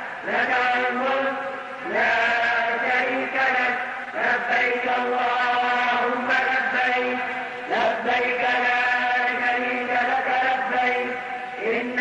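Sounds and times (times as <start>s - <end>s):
man chanting unaccompanied: 0.1s - 12.0s.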